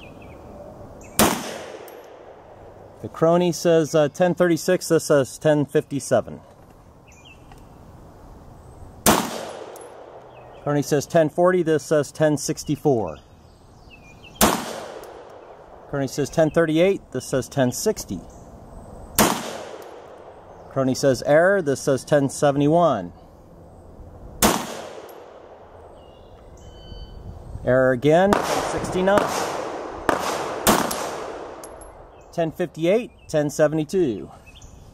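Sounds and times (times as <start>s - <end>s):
pistol shot: 1.1s - 2.5s, 9.0s - 10.2s, 14.4s - 15.8s, 19.2s - 20.4s, 24.4s - 25.9s, 28.3s - 32.1s
gunshot with echo: 1.2s - 2.4s, 9.0s - 10.2s, 14.4s - 15.4s, 19.2s - 20.4s, 24.4s - 25.5s, 28.3s - 31.7s.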